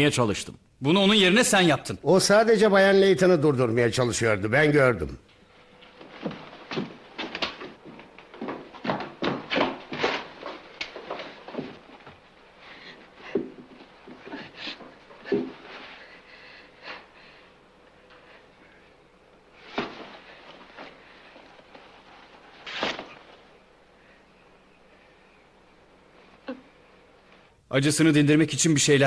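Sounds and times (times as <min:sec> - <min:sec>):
rustling and scuffing: 0:05.4 - 0:16.4, 0:19.5 - 0:23.6
hard breathing: 0:11.3 - 0:22.6.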